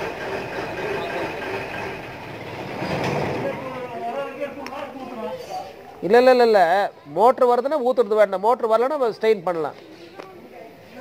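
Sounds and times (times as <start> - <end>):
faint men's voices: 3.1 - 11.0.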